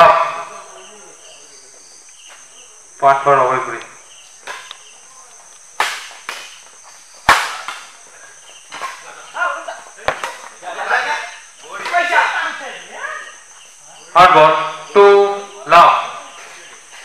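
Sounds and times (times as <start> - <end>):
rackets hitting shuttlecock: 4.4 - 4.8, 5.6 - 8.1, 10.0 - 10.6.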